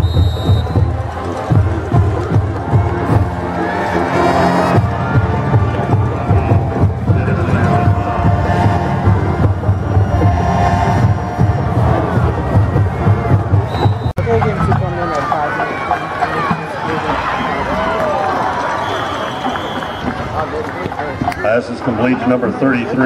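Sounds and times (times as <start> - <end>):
music with heavy low beat: 0.0 - 15.1
stadium crowd cheering: 0.0 - 23.0.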